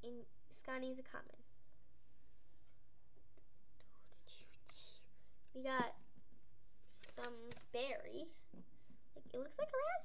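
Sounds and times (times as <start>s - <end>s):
child whispering: 3.8s - 5.2s.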